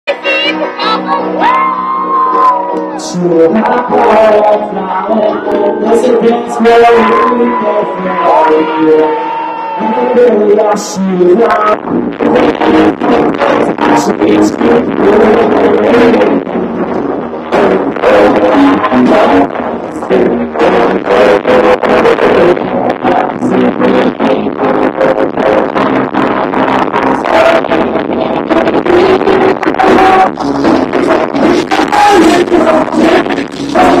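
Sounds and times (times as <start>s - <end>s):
live rock band: 0.1s - 34.0s.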